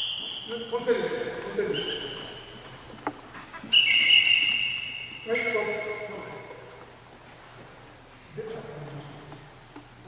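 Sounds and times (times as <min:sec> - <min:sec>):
whistle blast: 0:00.0 - 0:00.7, 0:03.7 - 0:05.8.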